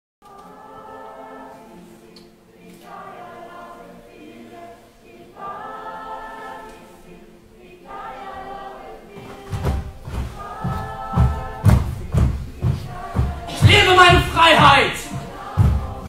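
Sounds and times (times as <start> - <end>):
group singing a cappella: 0.2 - 16.0.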